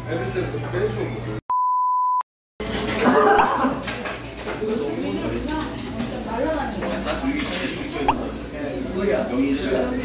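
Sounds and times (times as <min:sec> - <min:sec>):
high pure beep tone: 0:01.5 - 0:02.2.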